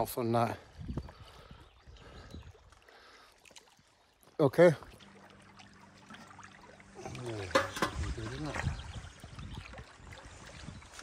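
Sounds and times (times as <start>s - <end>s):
water trickling over rocks: 0.0s - 11.0s.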